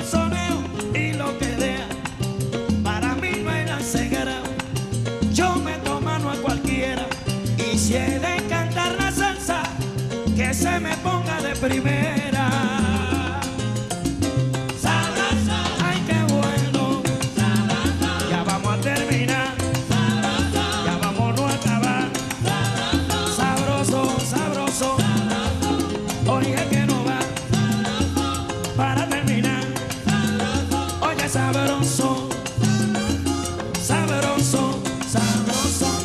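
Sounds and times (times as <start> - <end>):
salsa band playing: 0.0 - 36.0.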